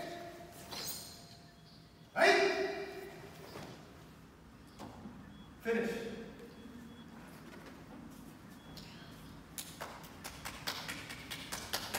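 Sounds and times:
people clapping: 0:09.6 - 0:11.9.

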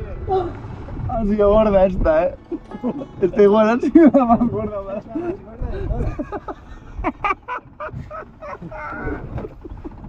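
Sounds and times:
low rumble: 0:00.0 - 0:10.0
men laughing hard: 0:02.4 - 0:10.0.

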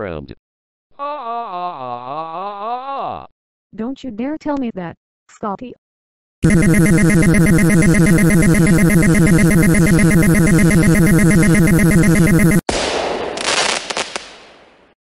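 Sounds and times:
noisy burst: 0:06.4 - 0:12.6
warbling synthesized sound effect: 0:06.4 - 0:12.6.

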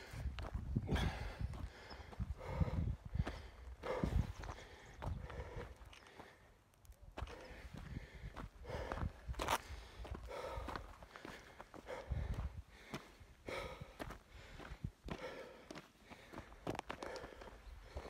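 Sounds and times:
footsteps on gravel: 0:00.0 - 0:18.0.

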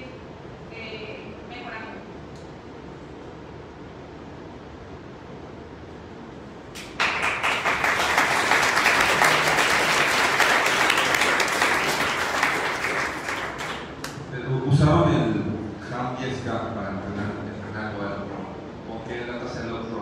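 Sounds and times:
audience applause: 0:06.8 - 0:14.2.

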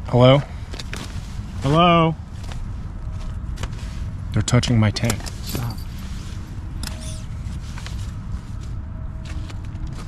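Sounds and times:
steady low rumble: 0:00.0 - 0:10.0
rustling and scraping on a tent: 0:00.8 - 0:04.4, 0:05.3 - 0:10.0.

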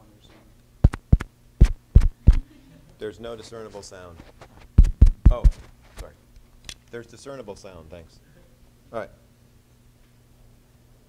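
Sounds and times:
microphone tapping thumps: 0:00.8 - 0:02.4, 0:04.3 - 0:05.8.

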